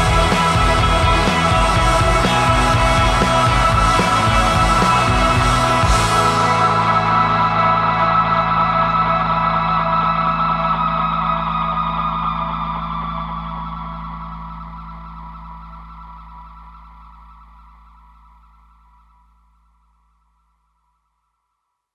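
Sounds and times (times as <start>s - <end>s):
distorted electric guitar chord: 0.0s - 11.4s
steady low notes: 0.0s - 19.3s.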